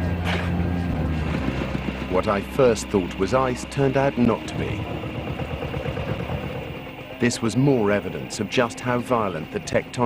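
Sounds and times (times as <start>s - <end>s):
diesel engine chugging: 0.0s - 10.0s.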